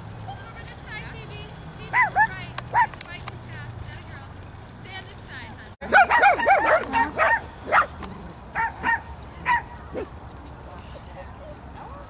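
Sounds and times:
woman's voice: 0:00.3 - 0:05.8
dogs yipping: 0:01.9 - 0:03.6, 0:05.3 - 0:12.0
small dogs playing: 0:02.0 - 0:12.0.

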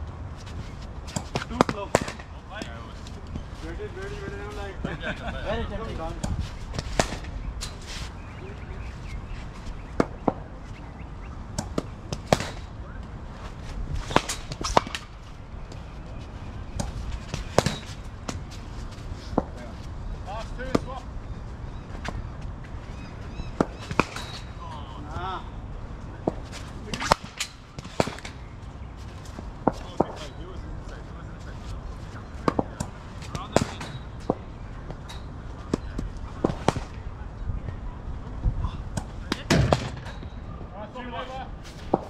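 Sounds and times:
bats striking cricket balls: 0:01.0 - 0:03.8, 0:06.0 - 0:10.5, 0:11.4 - 0:21.1, 0:23.5 - 0:25.3, 0:26.1 - 0:30.4, 0:32.3 - 0:37.1, 0:38.9 - 0:40.4, 0:41.7 - 0:42.0.

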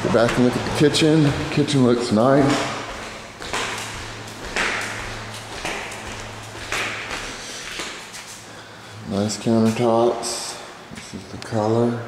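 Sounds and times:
footsteps on tile floor: 0:00.0 - 0:08.6
steady low hum: 0:00.0 - 0:12.0.

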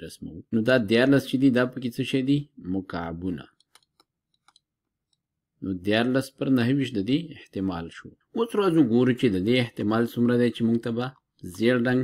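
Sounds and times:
man speaking: 0:00.0 - 0:03.6, 0:05.6 - 0:12.0
stylus clicks on drawing tablet: 0:03.4 - 0:05.5.

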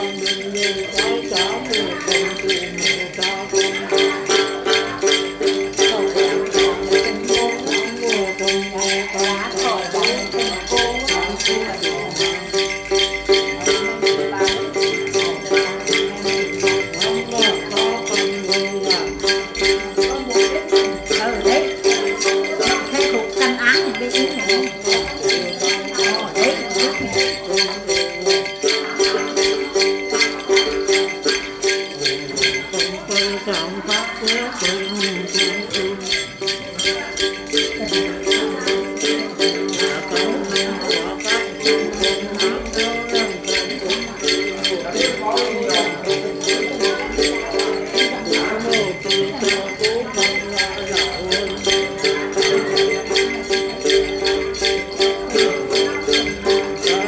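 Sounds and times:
plucked lute strings: 0:00.0 - 0:57.0
small bells jingling: 0:00.0 - 0:57.0.

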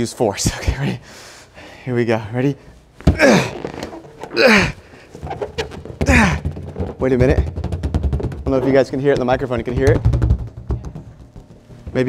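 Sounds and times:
man grunting with effort: 0:03.1 - 0:03.7, 0:04.3 - 0:04.9, 0:06.0 - 0:06.5.

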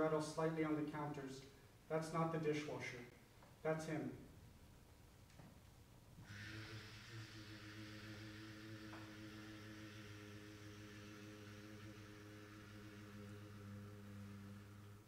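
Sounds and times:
low hum with hiss: 0:00.0 - 0:15.0.

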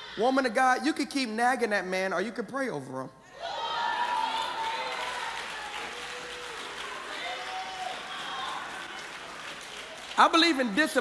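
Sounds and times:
congregation applauding: 0:03.6 - 0:11.0.

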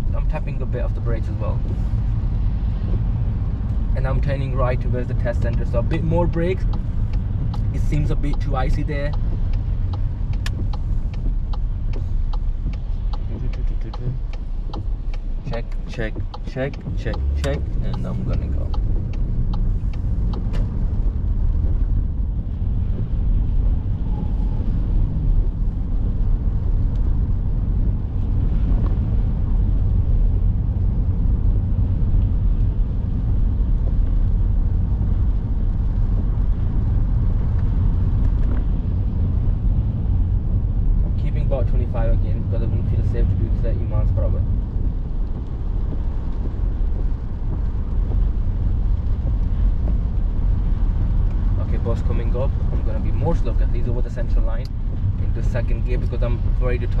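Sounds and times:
car road and engine noise: 0:00.0 - 0:57.0.

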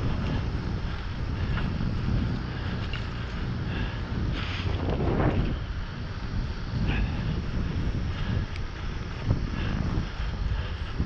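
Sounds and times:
tyres rumbling on asphalt: 0:00.0 - 0:11.0
wind buffeting microphone: 0:00.0 - 0:11.0.

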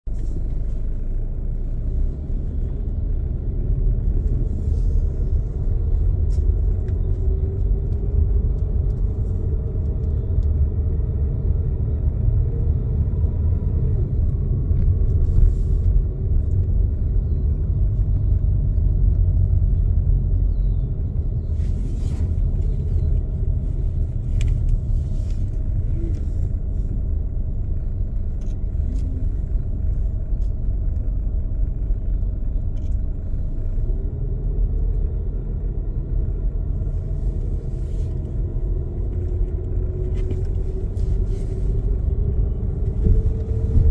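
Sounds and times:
car engine and tyres rumbling: 0:00.0 - 0:43.9.

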